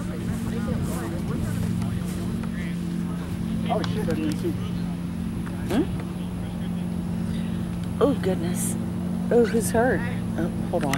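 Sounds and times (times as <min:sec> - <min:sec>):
low mechanical hum: 0:00.0 - 0:10.9.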